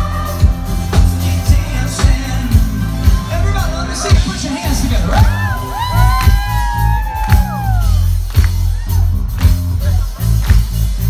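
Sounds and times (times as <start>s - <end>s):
live band playing dance-pop: 0.0s - 11.0s
voices whooping: 4.4s - 10.1s.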